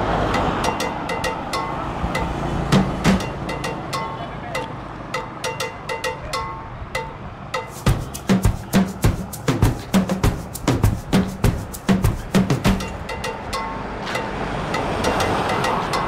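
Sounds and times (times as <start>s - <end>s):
music with drums and melody: 0.6s - 4.3s, 5.1s - 13.8s.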